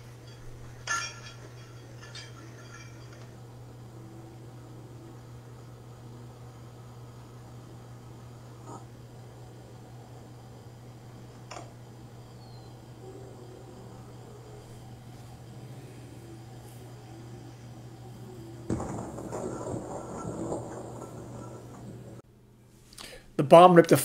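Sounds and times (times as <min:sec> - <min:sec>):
low videotape hum: 0:00.0 - 0:24.0
bomb explosion: 0:18.6 - 0:22.2.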